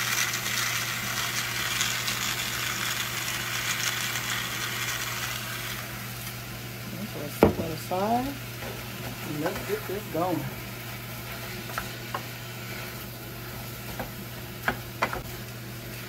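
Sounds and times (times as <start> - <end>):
meat sizzling in a saucepan: 0.0 - 16.0.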